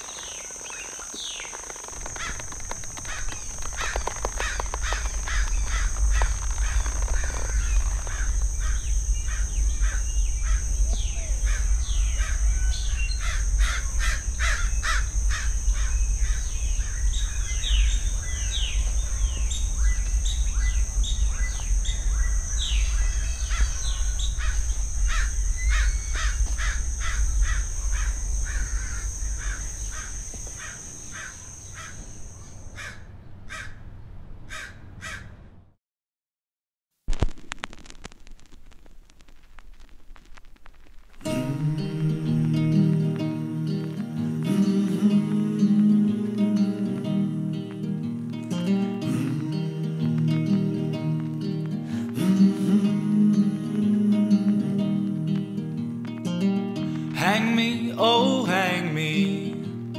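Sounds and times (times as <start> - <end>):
crows cawing: 1.8 - 17.6, 23.0 - 33.8, 34.5 - 35.4
low rumble: 2.1 - 32.7
steady high-pitched drone: 2.3 - 32.6.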